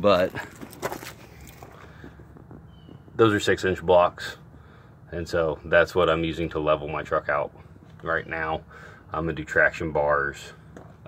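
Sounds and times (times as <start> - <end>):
footsteps on gravel: 0.0 - 3.4
faint high chirp: 2.6 - 3.2.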